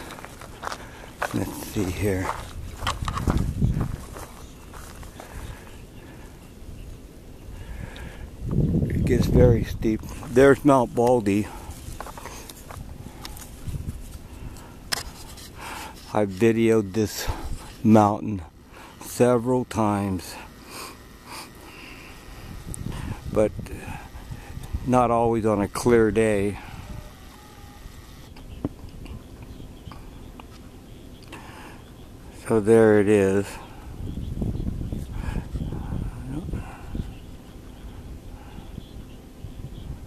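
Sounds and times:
footsteps on dirt trail: 0:00.0 - 0:05.7, 0:09.9 - 0:18.0
quiet outdoor ambience: 0:00.0 - 0:40.0
person speaking: 0:01.2 - 0:02.4, 0:09.0 - 0:12.5, 0:15.2 - 0:28.0
person breathing close to microphone: 0:07.5 - 0:08.4, 0:11.4 - 0:16.1, 0:20.4 - 0:24.8, 0:26.6 - 0:27.2, 0:35.0 - 0:37.2.

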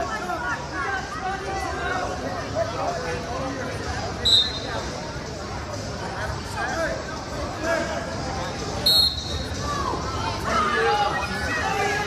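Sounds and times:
coaches and spectators shouting: 0:00.0 - 0:05.2, 0:06.0 - 0:12.0.

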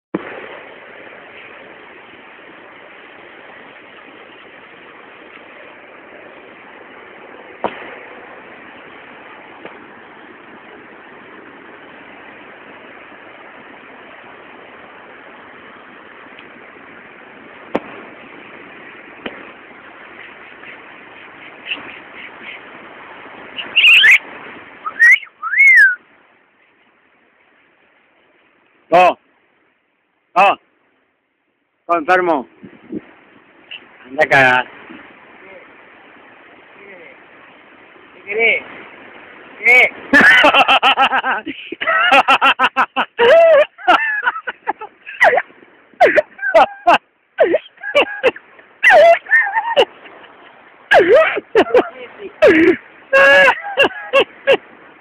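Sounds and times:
outdoor noise hiss: 0:00.1 - 0:55.0
gliding whistle-like calls: 0:20.2 - 0:22.6, 0:23.5 - 0:26.0.

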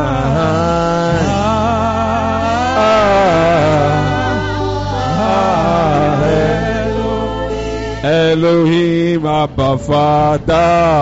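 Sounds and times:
man singing a chant: 0:00.0 - 0:11.0.

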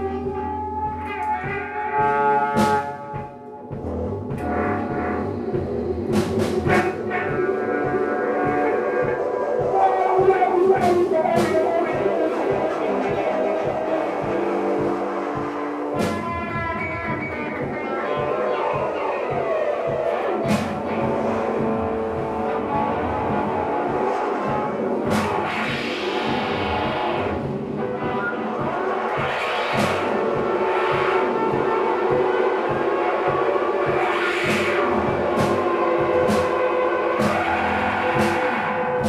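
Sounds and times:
drums: 0:00.0 - 0:39.0
live band playing: 0:00.0 - 0:39.0
cymbal crashes: 0:20.4 - 0:39.0.

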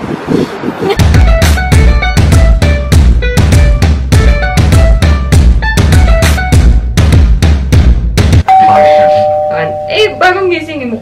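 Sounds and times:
drum-heavy intro music: 0:01.0 - 0:08.5
two-tone ding-dong chime: 0:08.5 - 0:10.4.

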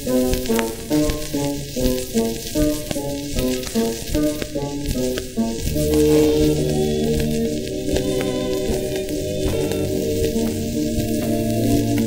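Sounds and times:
old record popular song melody: 0:00.0 - 0:12.0
record surface hiss and crackle: 0:00.0 - 0:12.0.

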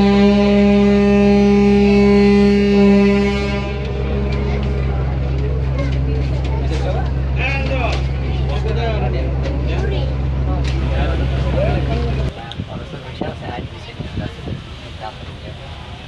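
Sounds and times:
boat engine droning: 0:00.0 - 0:16.0
passengers chattering: 0:00.0 - 0:16.0.

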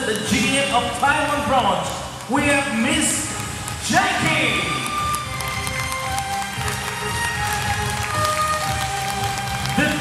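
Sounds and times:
violins playing slow melody: 0:04.5 - 0:10.0.

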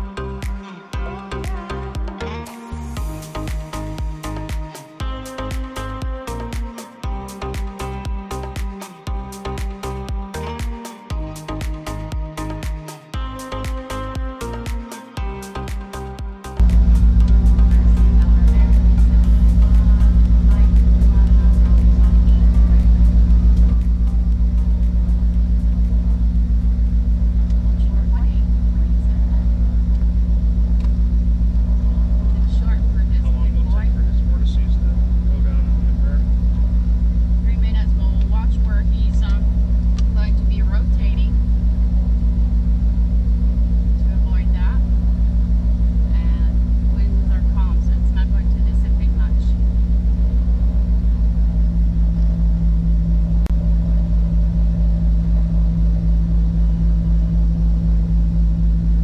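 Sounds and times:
twin piston aircraft engines droning: 0:16.6 - 0:59.0.

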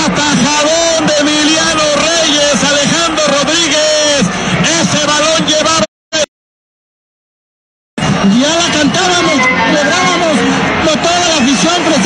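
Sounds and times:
loud indistinct voices: 0:00.0 - 0:06.3, 0:08.0 - 0:12.0.

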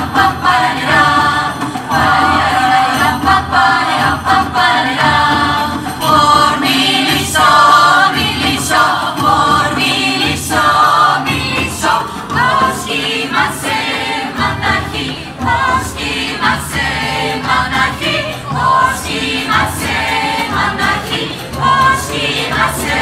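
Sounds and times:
choir singing folk song: 0:00.0 - 0:23.0
drum steady beat: 0:00.0 - 0:23.0.

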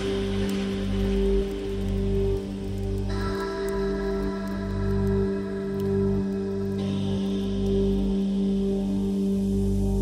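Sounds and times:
rain-like hiss: 0:00.0 - 0:10.0.

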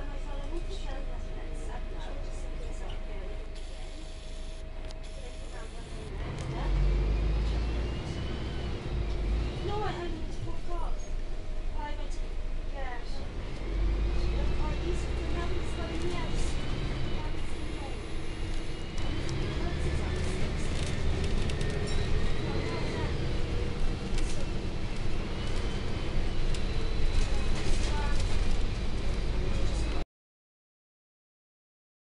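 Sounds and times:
engine and road rumble: 0:00.0 - 0:30.0.

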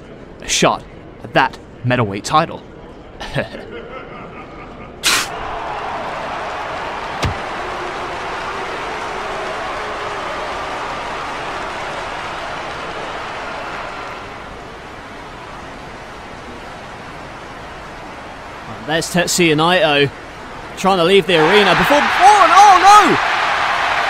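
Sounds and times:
sharp knock: 0:07.2 - 0:07.5.

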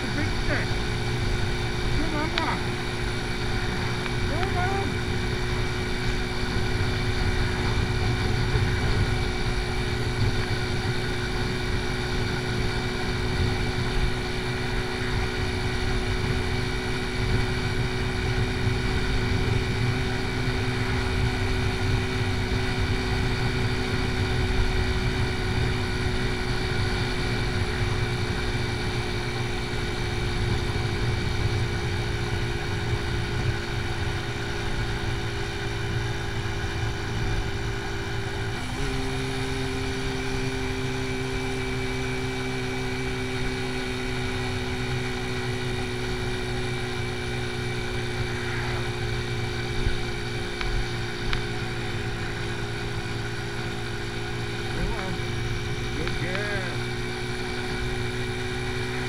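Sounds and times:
motorcycle engine running: 0:00.0 - 0:59.0
wind rushing over microphone: 0:02.6 - 0:14.2.

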